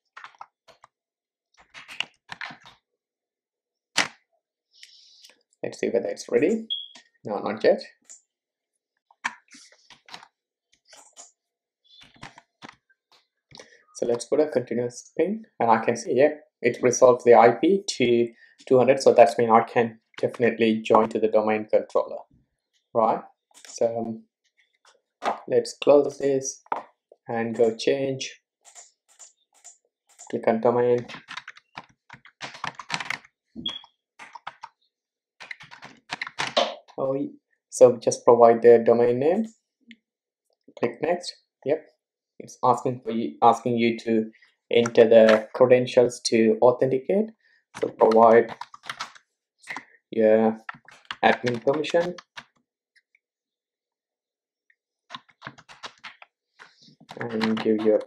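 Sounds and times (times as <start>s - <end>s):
computer keyboard typing: 31.0s - 34.8s, 35.4s - 36.9s, 47.8s - 49.8s, 50.6s - 52.6s, 55.1s - 58.0s.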